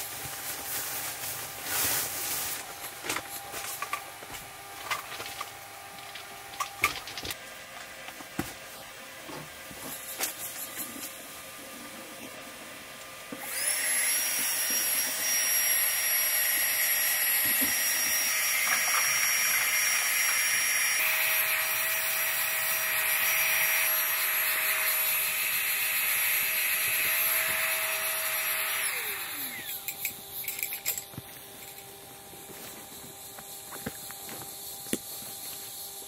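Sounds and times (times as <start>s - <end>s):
electric air pump whining: 13.2s - 36.0s.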